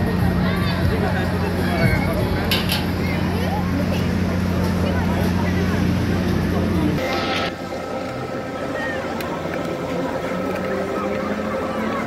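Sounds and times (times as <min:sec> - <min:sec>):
carnival machinery humming: 0:00.0 - 0:12.0
crowd chatter: 0:00.0 - 0:12.0.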